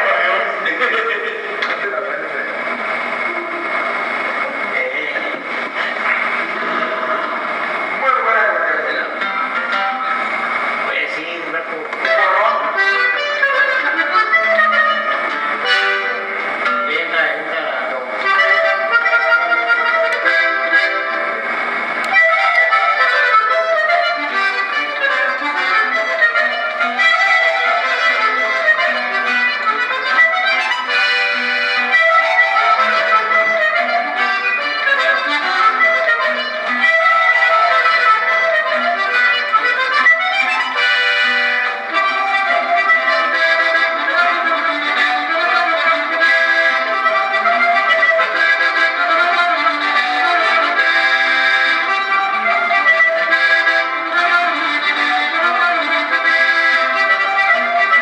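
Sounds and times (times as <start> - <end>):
people talking: 0.0 - 15.9, 16.6 - 21.6
button accordion playing: 0.0 - 58.0.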